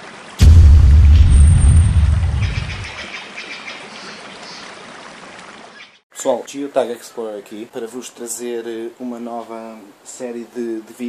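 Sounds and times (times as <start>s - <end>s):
deep rumbling boom: 0.4s - 3.0s.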